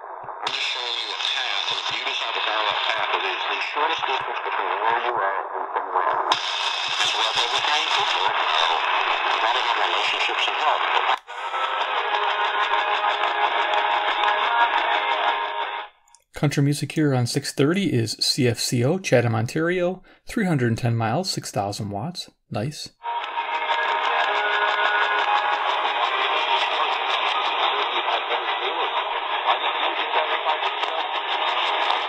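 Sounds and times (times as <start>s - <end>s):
radio music: 0.0s - 32.0s
radio speech: 0.4s - 14.1s, 16.4s - 22.9s, 25.6s - 32.0s.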